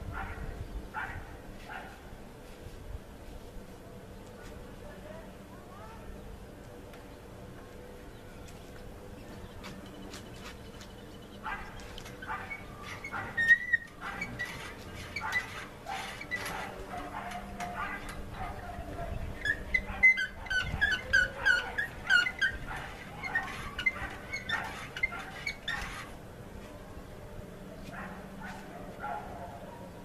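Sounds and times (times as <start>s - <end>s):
dog whimpering and yipping: 12.2s - 18.7s, 19.4s - 26.1s.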